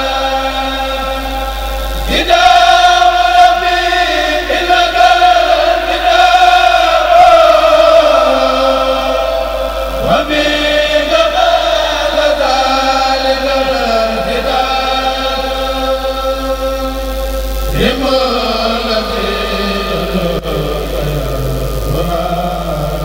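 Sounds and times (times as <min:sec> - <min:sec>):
men chanting in unison: 0:02.1 - 0:16.9, 0:17.7 - 0:23.0.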